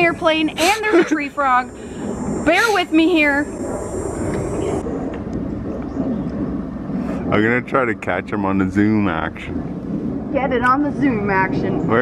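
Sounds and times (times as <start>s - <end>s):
airplane flying overhead: 0.0s - 12.0s.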